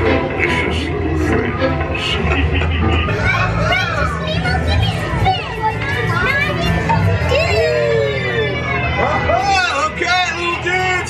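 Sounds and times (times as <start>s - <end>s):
children chattering and calling out: 3.0s - 9.5s.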